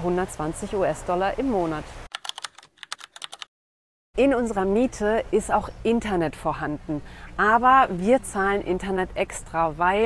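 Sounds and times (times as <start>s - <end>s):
typing on computer keyboard: 2.1s - 3.5s.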